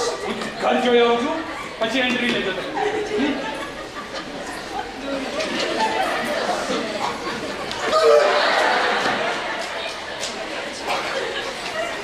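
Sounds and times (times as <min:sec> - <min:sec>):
indistinct chatter of voices: 0:00.0 - 0:12.0.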